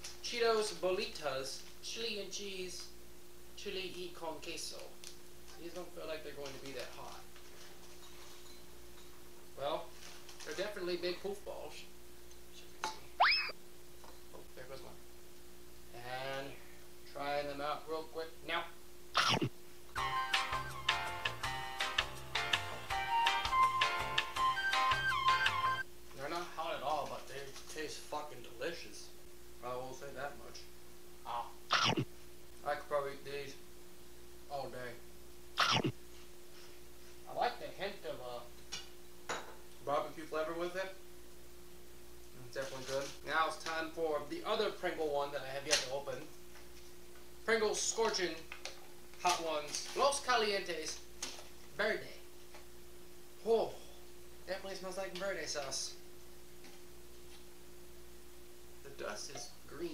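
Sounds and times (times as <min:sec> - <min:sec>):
rising boing sound effect: 0:13.2 - 0:13.5, 0:31.7 - 0:32.1, 0:35.6 - 0:35.9.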